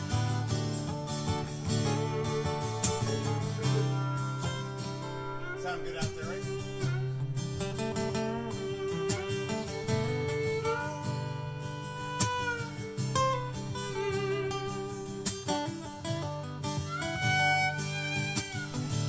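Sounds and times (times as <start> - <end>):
strummed guitars: 0.0 - 19.0
violin long held notes: 1.6 - 15.8, 16.8 - 19.0.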